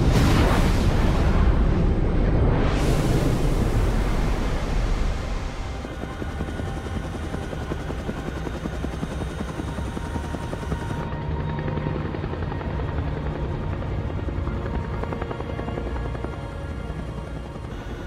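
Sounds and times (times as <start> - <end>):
film score music: 0.0 - 18.0
helicopter rotor beating: 3.0 - 18.0.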